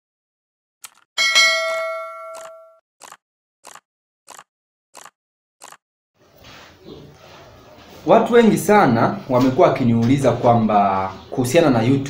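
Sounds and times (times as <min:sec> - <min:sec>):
bell-like ding: 0:01.2 - 0:02.8.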